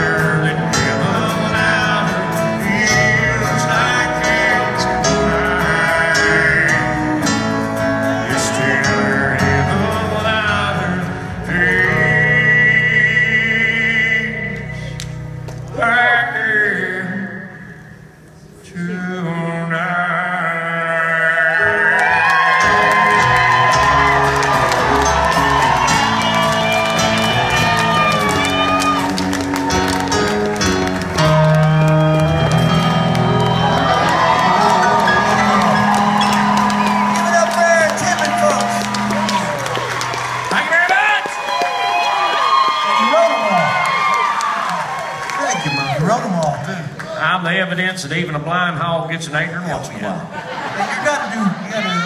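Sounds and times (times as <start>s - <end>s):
live country band playing: 0.0s - 18.1s, 18.7s - 52.0s
audience cheering and whooping: 21.5s - 47.2s.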